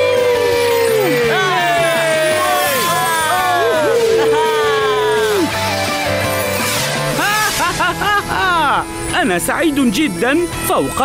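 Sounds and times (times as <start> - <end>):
whooping and exclaiming voices: 0.0 - 5.6
background music: 0.0 - 11.0.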